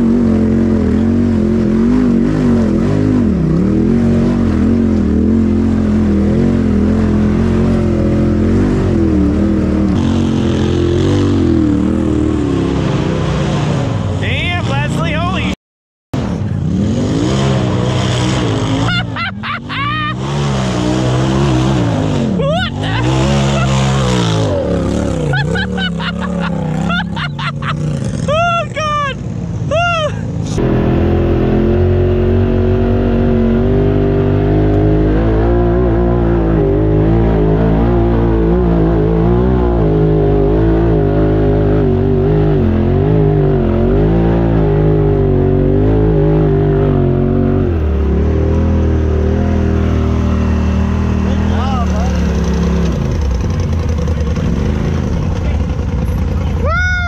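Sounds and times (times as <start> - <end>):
utility vehicle engine revving: 0.0 - 15.6, 16.2 - 57.0.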